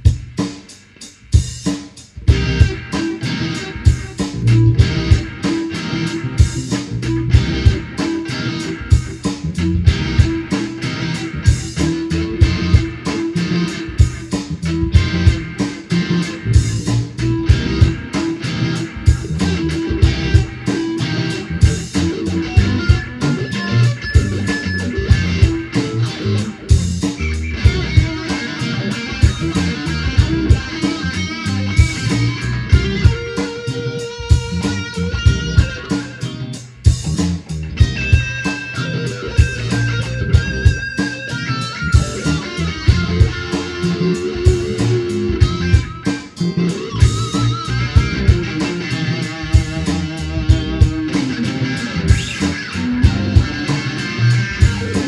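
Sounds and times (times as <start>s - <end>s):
bass: 0.0s - 55.0s
drums steady beat: 0.0s - 55.0s
electric guitar lead lines: 0.0s - 55.0s.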